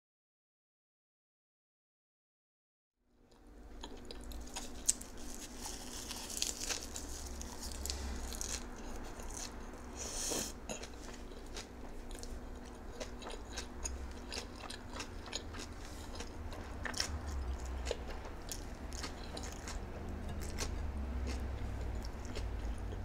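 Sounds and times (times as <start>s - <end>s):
person chewing crunchy food: 3.3s - 23.0s.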